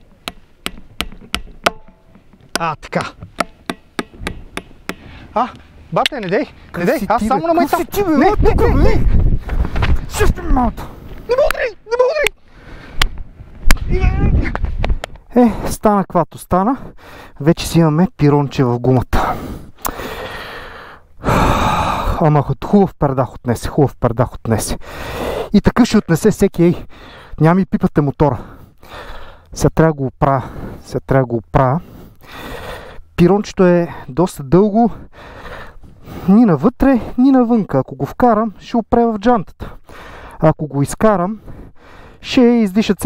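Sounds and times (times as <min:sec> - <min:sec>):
hammer tapping nail: 0:00.2 - 0:05.1
man breathing out heavily: 0:12.4 - 0:13.0, 0:16.9 - 0:17.4, 0:19.2 - 0:22.2, 0:24.8 - 0:25.5, 0:26.8 - 0:27.4, 0:28.4 - 0:29.5, 0:31.8 - 0:33.1, 0:35.0 - 0:36.3, 0:39.6 - 0:40.4, 0:41.4 - 0:42.2.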